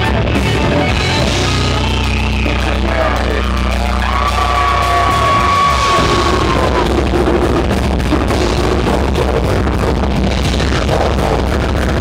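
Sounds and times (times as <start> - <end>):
distorted electric guitar: 0.0 - 12.0
drums: 0.0 - 12.0.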